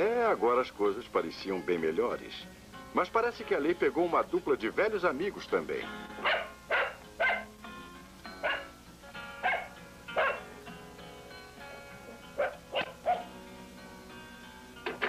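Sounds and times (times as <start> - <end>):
background music: 0.0 - 15.0
small dog barking: 6.2 - 7.5, 8.4 - 8.8, 9.4 - 10.5, 12.4 - 13.3.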